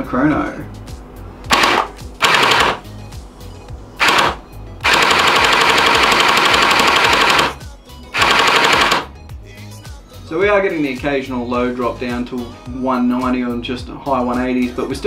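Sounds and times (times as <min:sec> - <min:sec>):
gel blaster full-auto firing: 0:01.5 - 0:02.9, 0:04.0 - 0:09.1.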